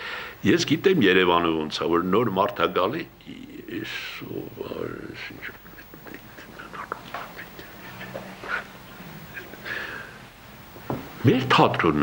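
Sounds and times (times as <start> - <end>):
man mumbling: 3.2 - 8.6.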